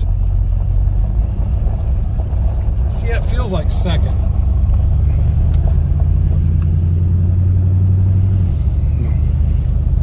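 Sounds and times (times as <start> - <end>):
car engine pulling under load: 0.0 - 10.0.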